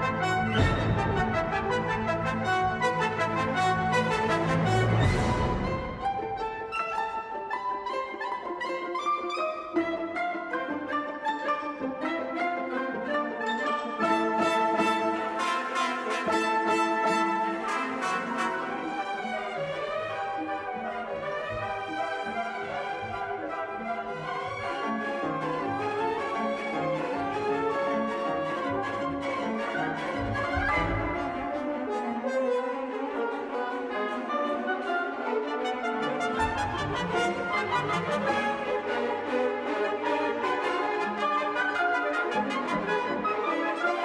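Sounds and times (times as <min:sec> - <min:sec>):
french horns: 0:00.0 - 0:06.1, 0:14.0 - 0:20.0
orchestral music with brass chords: 0:00.0 - 0:44.0.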